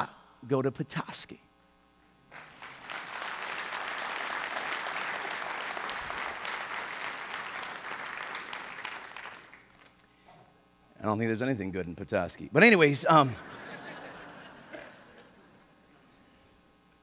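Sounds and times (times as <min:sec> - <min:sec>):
congregation applauding: 0:02.3 - 0:10.0.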